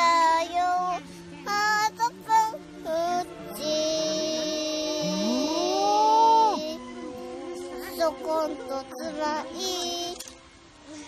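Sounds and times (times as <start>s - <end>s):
child singing: 0.0s - 6.9s, 7.6s - 10.3s
background music: 0.0s - 11.0s.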